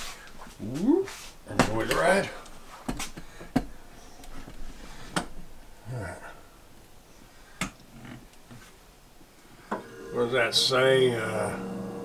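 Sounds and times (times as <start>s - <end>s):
low hum: 9.6s - 12.0s.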